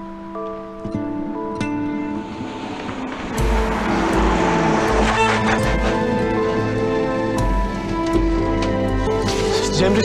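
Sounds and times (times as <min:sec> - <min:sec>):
dramatic score with held notes: 0:00.9 - 0:10.0.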